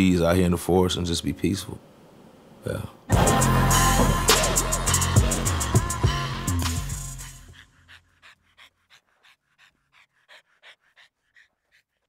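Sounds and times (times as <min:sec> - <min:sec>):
dog panting: 0:07.2 - 0:12.0.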